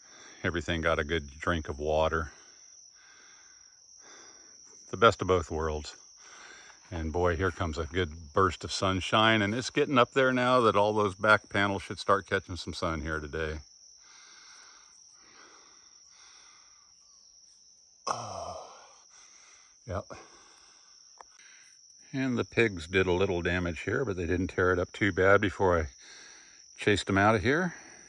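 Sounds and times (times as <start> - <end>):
crickets chirring: 0.0 - 28.0.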